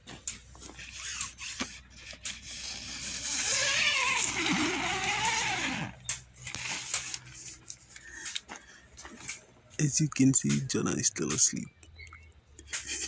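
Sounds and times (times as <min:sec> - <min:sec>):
tent zipper opening: 0:00.8 - 0:07.2.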